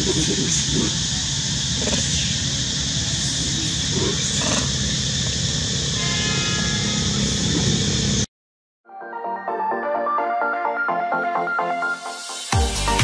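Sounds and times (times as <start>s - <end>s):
high hiss-like forest drone: 0.0s - 8.3s.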